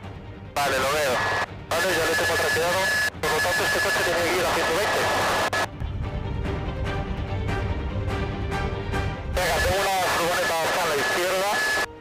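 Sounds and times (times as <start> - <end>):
voices over headset intercom: 0.6 - 5.7, 9.4 - 11.9.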